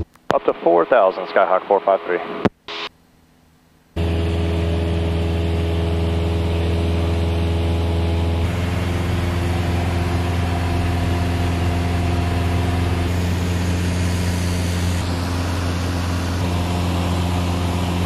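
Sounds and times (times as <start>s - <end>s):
propeller plane engine drone: 0.3s - 2.9s, 4.0s - 18.0s.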